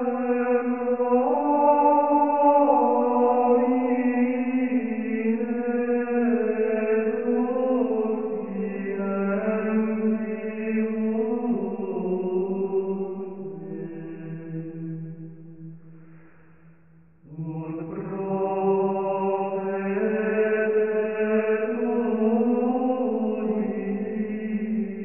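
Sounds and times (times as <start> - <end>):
slow chant-like singing: 0.0 - 25.0.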